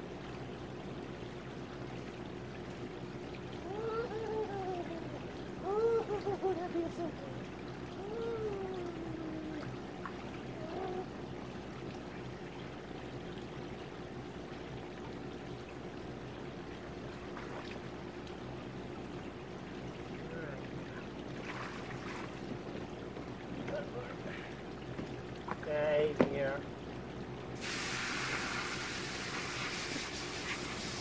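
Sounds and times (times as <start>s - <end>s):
dog whining: 3.6s - 7.3s, 10.4s - 11.2s
water pouring and running: 27.6s - 31.0s.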